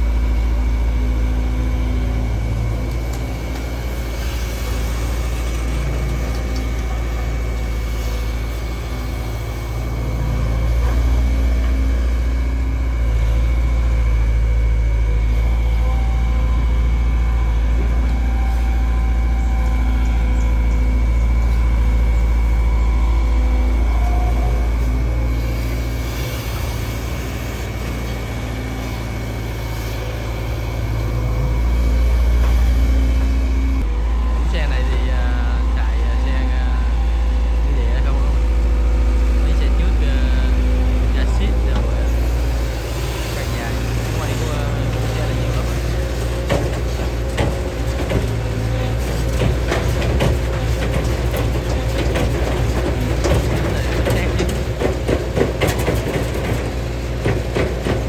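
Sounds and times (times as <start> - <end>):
excavator diesel engine under load: 0.0 - 58.0.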